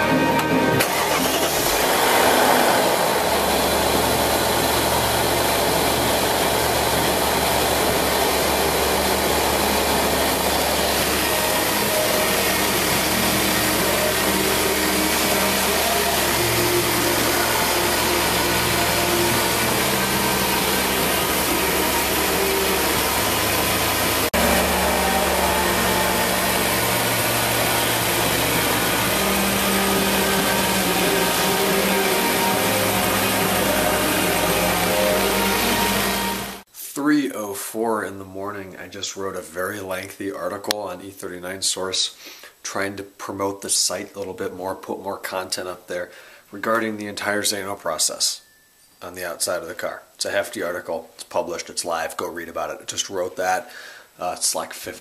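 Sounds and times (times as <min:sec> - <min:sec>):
car engine idling: 0:00.4 - 0:36.7.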